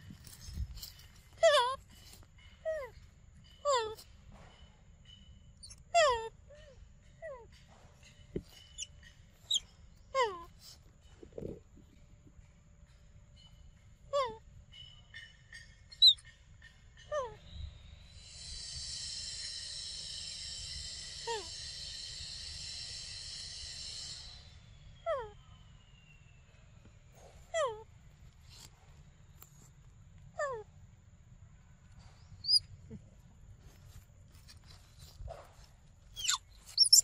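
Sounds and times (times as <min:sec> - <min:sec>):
sharp high bird chirps: 0:08.0 - 0:10.8, 0:14.7 - 0:16.4, 0:32.2 - 0:32.7, 0:36.1 - 0:37.0
insect buzzing: 0:36.2 - 0:37.0.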